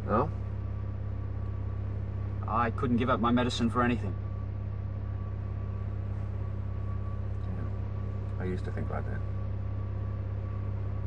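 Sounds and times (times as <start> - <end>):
faint high whine: 0.0 - 11.0
vehicle engine droning: 0.0 - 11.0.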